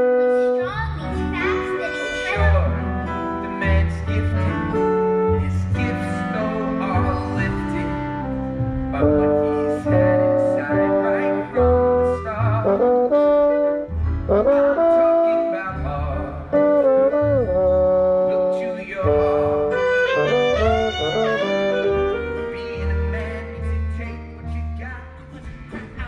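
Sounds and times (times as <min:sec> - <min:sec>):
low bass notes: 0:00.0 - 0:26.0
pit orchestra playing show music: 0:01.4 - 0:03.0, 0:19.0 - 0:24.0
slide trombone playing: 0:09.0 - 0:15.7, 0:16.5 - 0:23.4.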